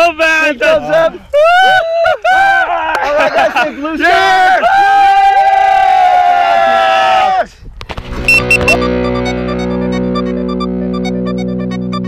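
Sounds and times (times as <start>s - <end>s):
music with held notes: 8.1s - 12.0s.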